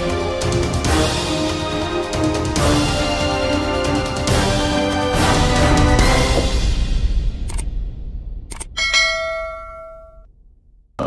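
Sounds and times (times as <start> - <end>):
bright bell ding: 8.8 - 10.3.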